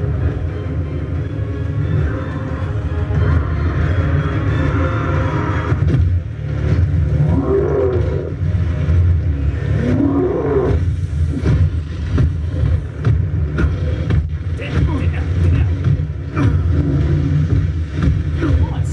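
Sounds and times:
heavy low rumble: 0.0 - 18.9.

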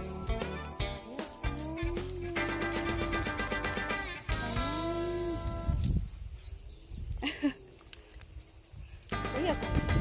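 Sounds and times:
dogs growling: 0.0 - 3.4.

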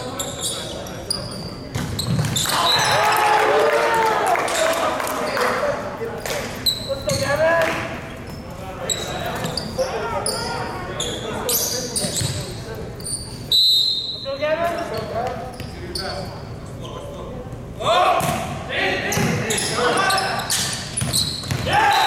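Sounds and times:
sneaker squeaks on court: 0.0 - 3.0, 6.2 - 7.4, 8.1 - 13.6, 14.6 - 17.2, 19.1 - 21.7
ball bouncing on floor: 1.7 - 2.5
players calling out: 17.8 - 22.0.

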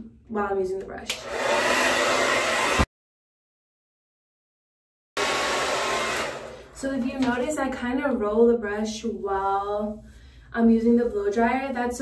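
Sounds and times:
blow dryer air rushing: 1.1 - 2.9, 5.2 - 6.8.

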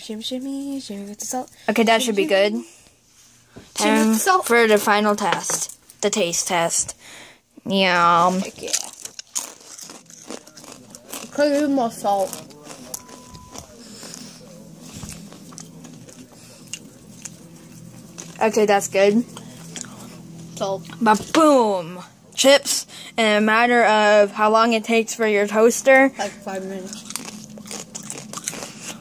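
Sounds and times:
person chewing crunchy chip: 8.4 - 18.4, 19.3 - 20.1, 26.8 - 29.0.

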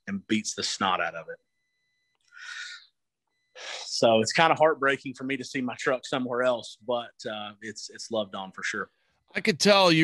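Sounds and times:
man speaking: 0.0 - 1.4, 3.6 - 10.0
man breathing: 2.3 - 2.9.

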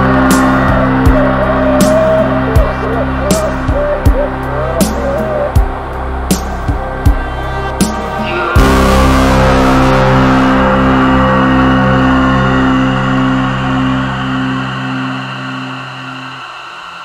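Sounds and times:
low pulsing drone: 0.0 - 17.0.

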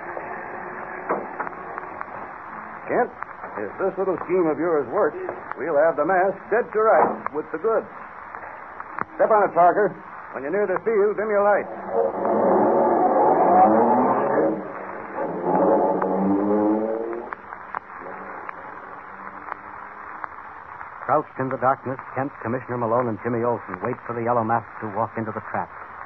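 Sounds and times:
broadcast recording hiss: 0.0 - 26.0
car engine driving off: 11.5 - 17.5.

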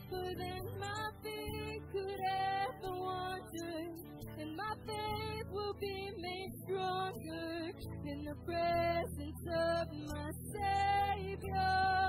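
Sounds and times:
female voices singing: 0.0 - 12.0
guitars: 0.0 - 12.0.

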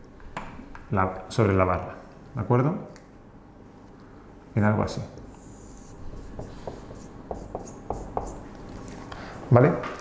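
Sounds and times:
marker drawing on whiteboard: 5.4 - 8.5.

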